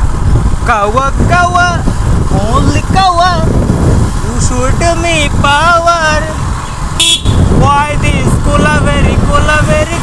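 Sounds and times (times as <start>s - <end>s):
wind rumble on microphone: 0.0s - 10.0s
man calling out loudly: 0.6s - 3.5s.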